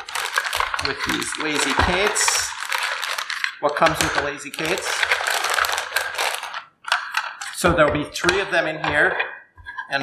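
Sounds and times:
plastic bag crinkling: 0.0 - 7.6.

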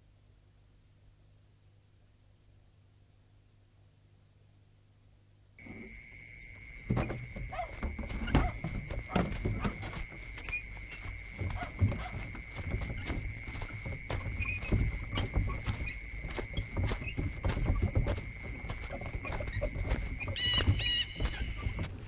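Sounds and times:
insect drone: 5.6 - 22.0
irregular thuds: 5.6 - 22.0
rustling: 5.6 - 22.0.

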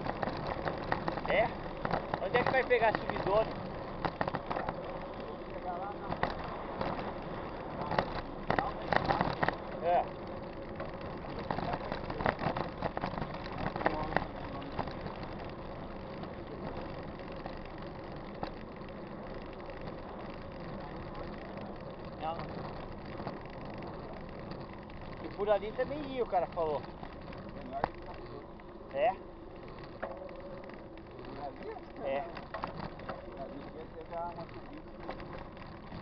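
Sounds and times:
bike rattling knocks: 0.0 - 36.0
bike tyres on pavement: 0.0 - 36.0.

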